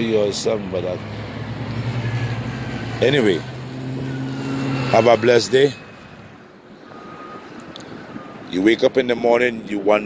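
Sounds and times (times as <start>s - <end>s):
distant vehicle hum: 0.0s - 10.0s.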